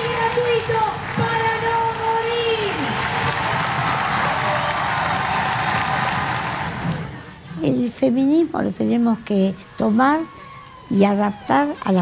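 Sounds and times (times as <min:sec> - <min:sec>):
crowd cheering and applause: 0:00.0 - 0:07.3.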